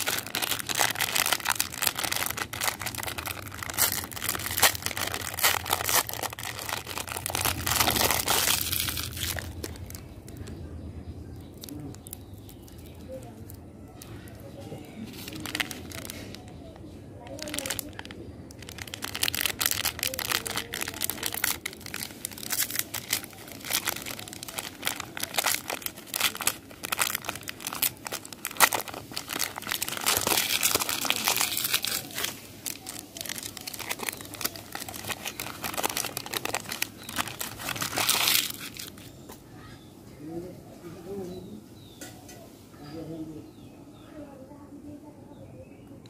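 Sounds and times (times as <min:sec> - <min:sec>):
wrapper and foil crinkling: 0:00.0 - 0:10.5, 0:11.4 - 0:39.2.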